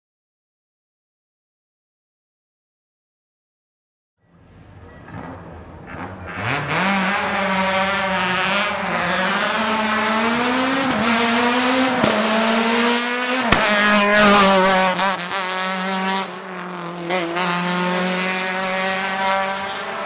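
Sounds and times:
race car engine accelerating: 4.3s - 20.0s.

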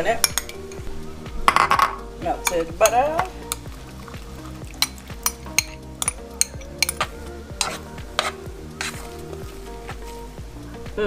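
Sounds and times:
metal spoon scraping a bowl: 2.5s - 9.5s.

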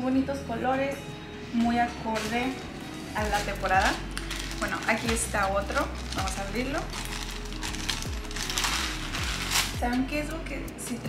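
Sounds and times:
background music with low beat: 0.2s - 11.0s
plastic bag crinkling: 2.1s - 10.1s.

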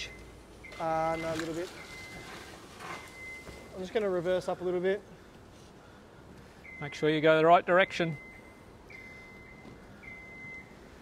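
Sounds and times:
lift motion alarm beeping: 0.0s - 3.8s, 6.6s - 7.1s, 7.8s - 10.9s
faint background noise: 0.0s - 11.0s.

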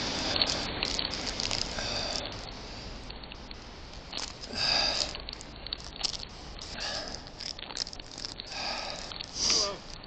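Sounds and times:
breathy hiss: 0.0s - 3.1s, 4.4s - 5.4s, 6.1s - 10.0s
handling rustles and clicks: 3.1s - 8.5s.

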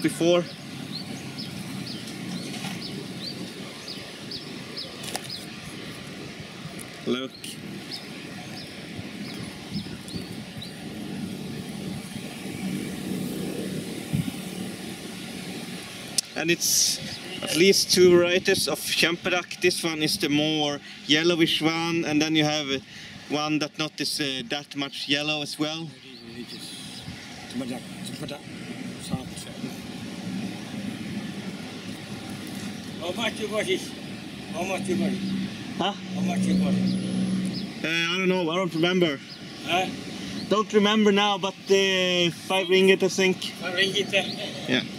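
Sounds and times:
traffic rumble: 0.0s - 44.9s.

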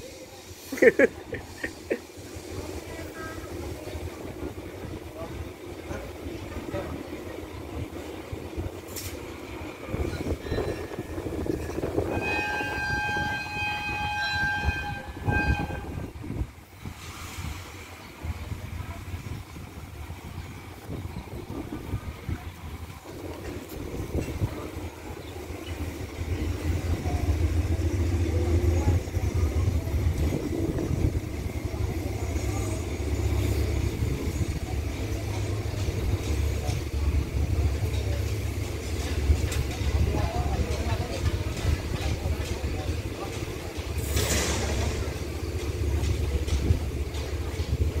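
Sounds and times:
diesel locomotive rumble: 0.0s - 48.0s
locomotive horn blast: 11.7s - 16.2s.

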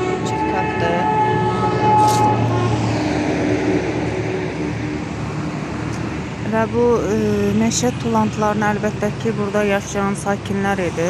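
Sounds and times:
street traffic engine hum: 0.0s - 11.0s.

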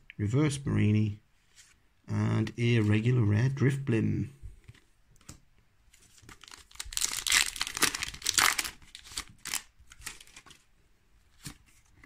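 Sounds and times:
cards clicking and rustling: 6.0s - 10.6s
foil pack crinkling: 6.1s - 10.6s.

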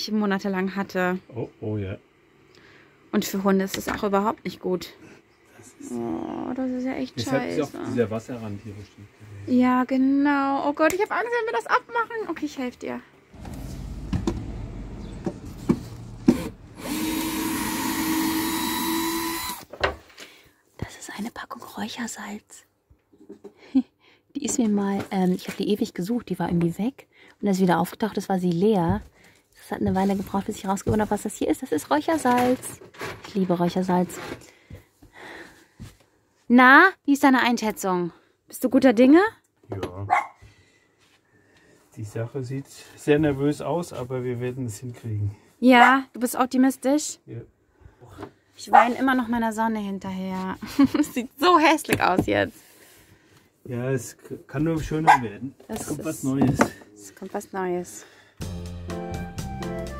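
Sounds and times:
cordless screwdriver motor whine: 16.3s - 19.7s
dog barking: 40.1s - 40.4s, 48.7s - 49.0s, 55.1s - 55.3s.

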